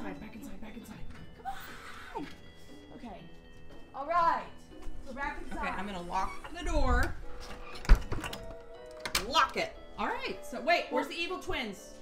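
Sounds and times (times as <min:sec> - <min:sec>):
faint background music: 0:00.0 - 0:12.0
door latch clicks: 0:07.0 - 0:09.6
door closing thunk: 0:07.6 - 0:09.3.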